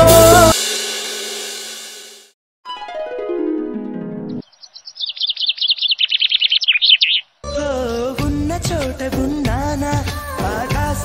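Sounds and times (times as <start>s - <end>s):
song with singing: 0.0s - 0.6s, 7.4s - 11.0s
bird twittering: 4.3s - 7.7s.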